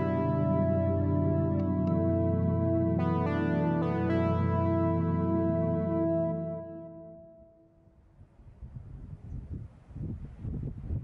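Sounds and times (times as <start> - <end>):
wind buffeting microphone: 8.1 - 11.0.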